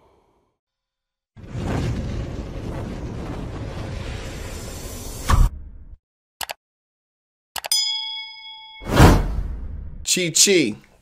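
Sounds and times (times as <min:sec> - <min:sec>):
bright bell ding: 0:07.7 - 0:09.2.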